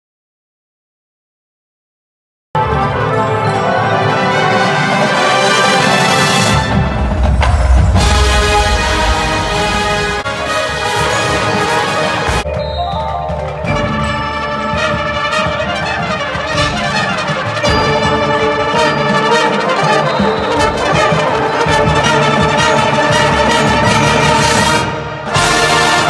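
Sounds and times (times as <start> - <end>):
marching band brass playing: 2.6 - 26.0
percussion: 2.6 - 26.0.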